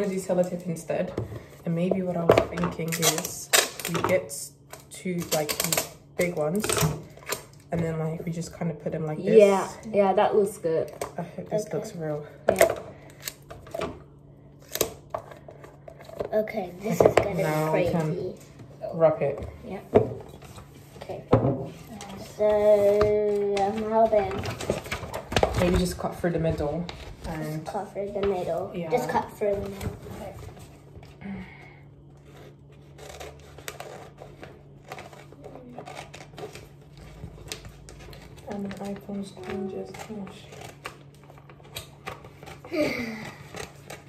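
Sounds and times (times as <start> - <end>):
scissors cutting paper: 32.2 - 44.0.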